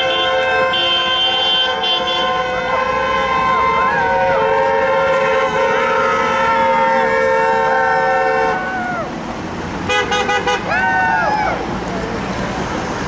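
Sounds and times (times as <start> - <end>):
car horns honking: 0.0 - 8.9, 9.8 - 10.8
voices calling out: 0.0 - 13.0.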